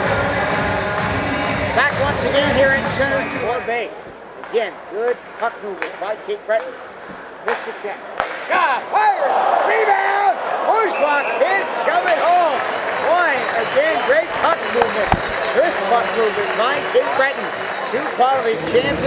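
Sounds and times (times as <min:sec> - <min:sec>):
crowd noise: 0:00.0 - 0:19.0
voices in arena: 0:00.0 - 0:19.0
sharp cracks of hockey play: 0:04.4 - 0:08.6, 0:12.0 - 0:18.2.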